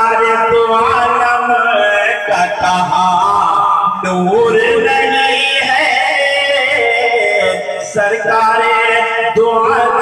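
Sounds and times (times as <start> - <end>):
man singing through loudspeakers: 0.0 - 10.0.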